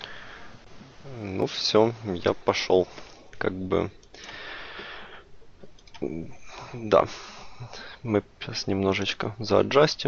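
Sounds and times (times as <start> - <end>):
soft hiss: 0.0 - 9.9
computer mouse clicks: 4.0 - 4.4, 5.6 - 6.1.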